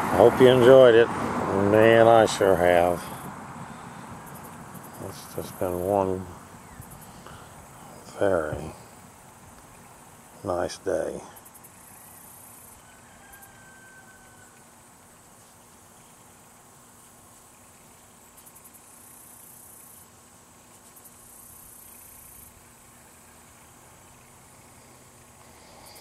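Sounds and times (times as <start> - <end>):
insects trilling: 0.2 - 26.0.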